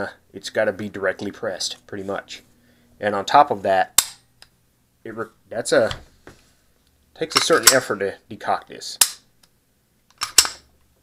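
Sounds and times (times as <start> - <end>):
pistol decocker click: 10.1 - 10.6.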